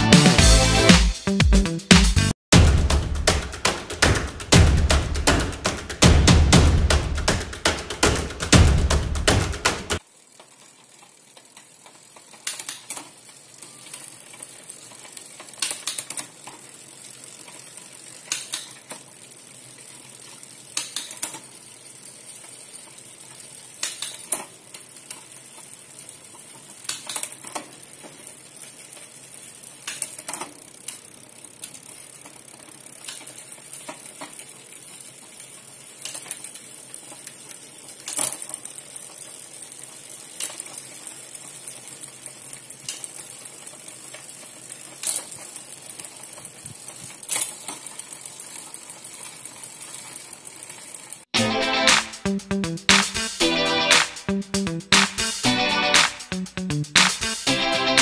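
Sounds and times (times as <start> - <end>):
bicycle chain hiss: 10.0 - 51.3.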